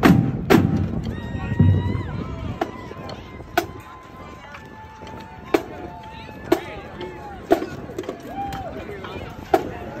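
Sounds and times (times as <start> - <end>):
marching drum line drumming: 0.0 - 10.0.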